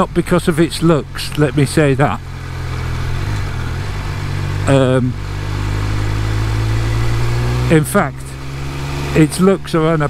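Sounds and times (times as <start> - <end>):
motorcycle engine at low revs: 0.0 - 10.0
wind and road noise: 0.0 - 10.0.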